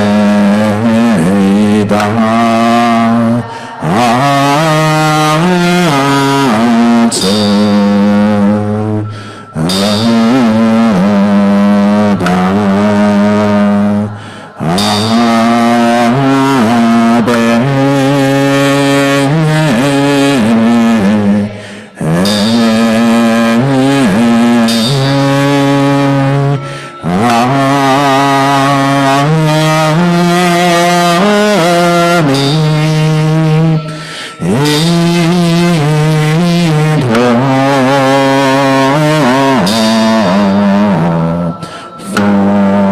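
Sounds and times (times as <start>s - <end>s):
group chanting slow melody: 0.0s - 42.9s.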